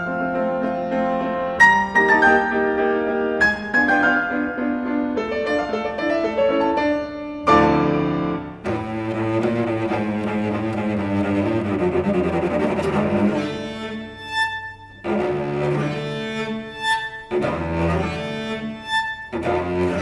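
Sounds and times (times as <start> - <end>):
piano accompaniment: 0.0 - 20.0
cello bowed notes: 7.4 - 20.0.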